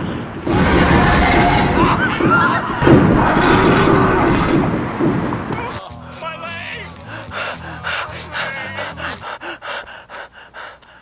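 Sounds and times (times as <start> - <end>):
people screaming and shouting: 0.4 - 4.8
loud low rumble: 0.4 - 5.8.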